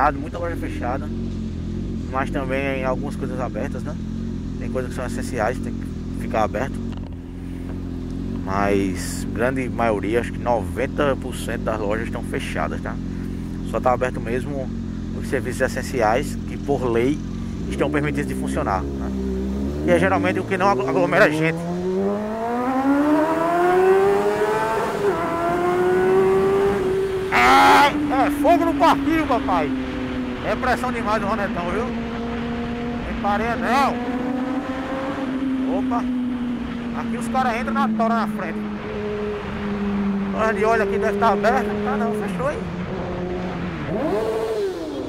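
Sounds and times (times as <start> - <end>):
motorcycle engine revving: 0.0 - 45.0.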